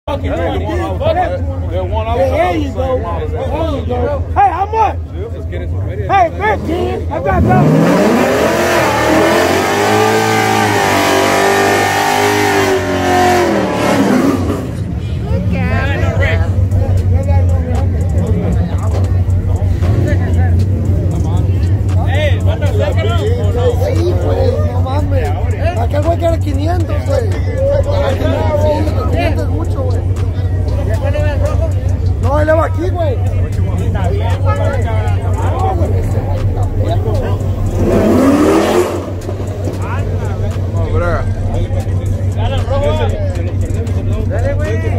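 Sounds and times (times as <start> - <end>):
crowd voices and shouting: 0.0 - 44.9
car engine revving: 5.3 - 44.9.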